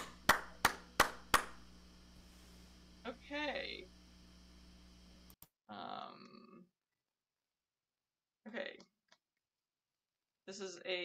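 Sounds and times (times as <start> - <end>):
slow hand claps: 0.0 - 1.6.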